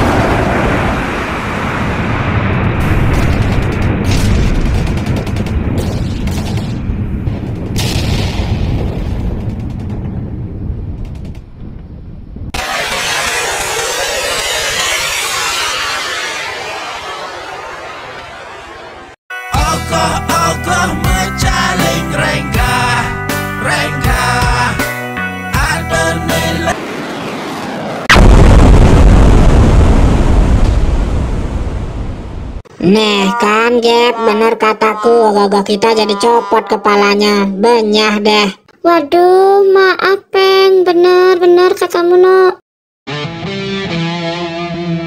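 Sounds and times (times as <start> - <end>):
explosion blast: 0.0 - 11.0, 12.0 - 19.2, 26.7 - 32.6
low rocket rumble: 0.0 - 19.2, 26.0 - 32.6
loud rushing missile hiss: 12.6 - 18.9.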